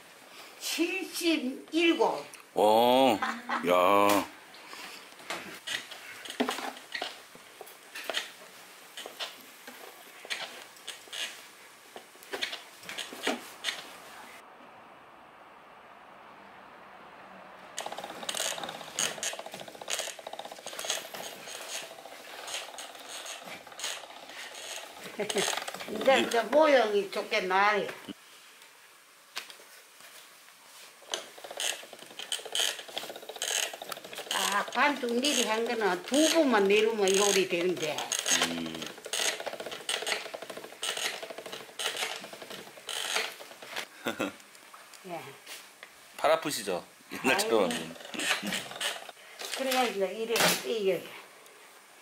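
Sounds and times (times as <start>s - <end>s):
noodle machine clicking: 17.8s - 26.7s, 31.1s - 43.9s, 47.7s - 50.6s.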